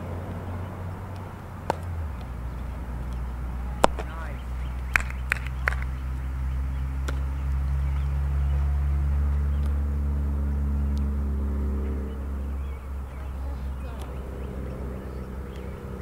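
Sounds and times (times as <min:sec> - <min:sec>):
low engine-like rumble: 0:00.0 - 0:16.0
ball smacking into glove: 0:01.6 - 0:01.9, 0:03.8 - 0:04.1.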